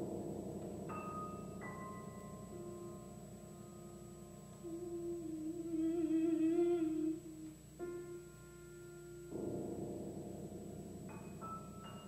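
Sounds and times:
piano note: 0.0s - 12.0s
soprano humming a note: 4.2s - 9.4s.

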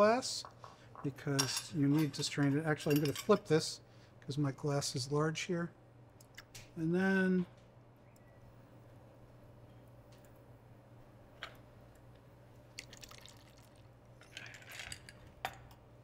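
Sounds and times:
low room hum: 0.0s - 16.0s
drips: 12.7s - 13.9s
liquid trickling into glass: 12.7s - 13.9s.

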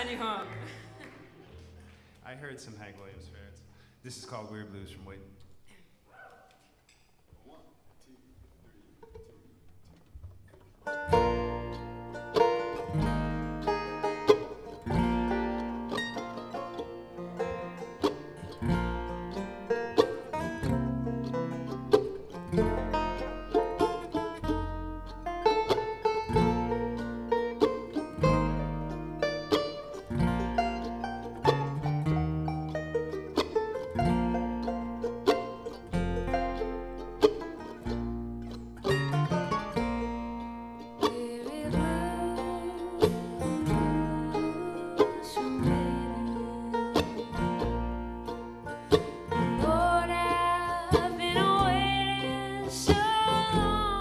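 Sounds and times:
mandolin: 0.0s - 5.7s, 8.4s - 54.0s
acoustic guitar: 8.4s - 54.0s
banjo: 8.8s - 54.0s
upright bass plucking low notes: 10.8s - 54.0s.

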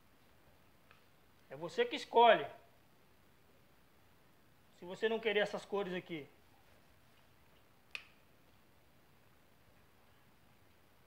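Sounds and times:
sharp click: 7.9s - 8.2s.

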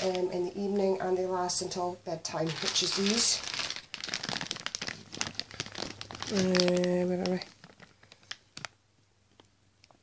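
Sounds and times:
plastic bag crinkling: 0.0s - 0.8s, 2.2s - 9.4s.

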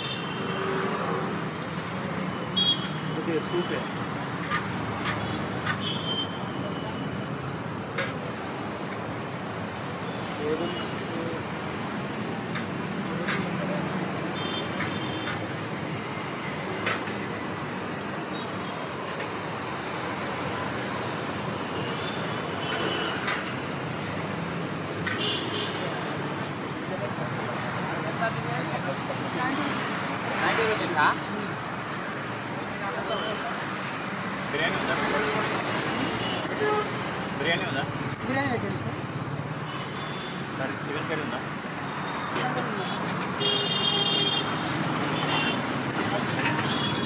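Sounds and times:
roadside traffic noise: 0.0s - 47.0s
background talk: 12.9s - 14.4s, 25.6s - 32.0s, 45.8s - 47.0s.

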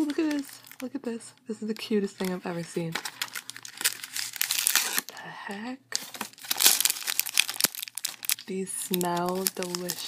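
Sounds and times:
plastic packaging crinkling: 0.0s - 5.1s, 5.9s - 10.0s.

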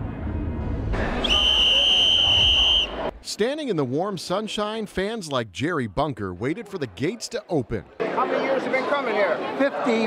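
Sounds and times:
high whistle-like tone: 1.2s - 3.1s.

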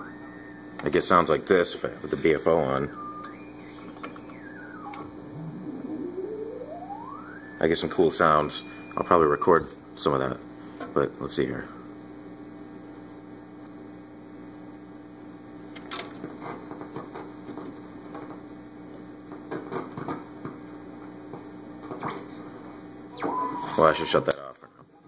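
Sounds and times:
low hum-like tone: 0.0s - 10.2s
radio static: 0.9s - 9.7s, 22.0s - 24.6s
whistle gliding in pitch: 2.8s - 9.6s, 22.0s - 24.4s.

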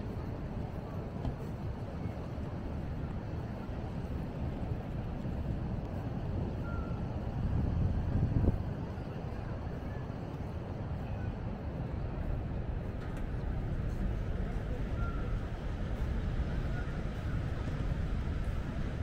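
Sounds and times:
outdoor low rumble: 0.0s - 19.0s.

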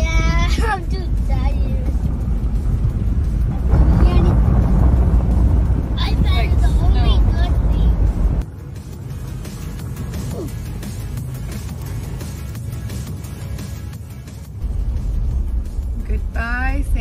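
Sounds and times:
car cabin road rumble: 0.0s - 17.0s
child laughing: 0.3s - 1.1s.

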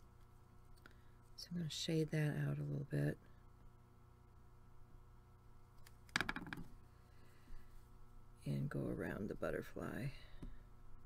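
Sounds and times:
plastic clicks and knocks on table: 6.1s - 6.7s.

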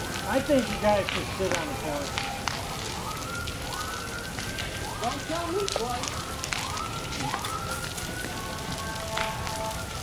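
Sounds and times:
fire burning with crackles: 0.0s - 10.0s.

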